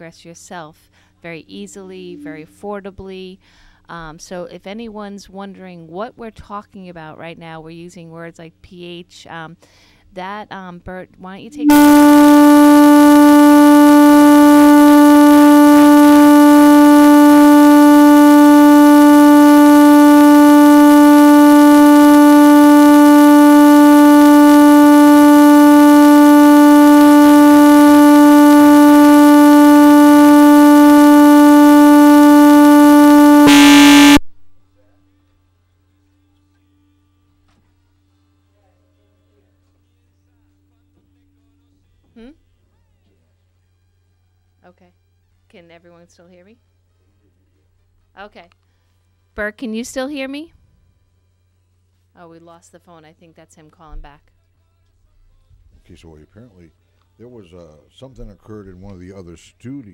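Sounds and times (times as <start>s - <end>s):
steady single-pitched fault tone: 2.1s - 2.5s, 11.5s - 34.4s.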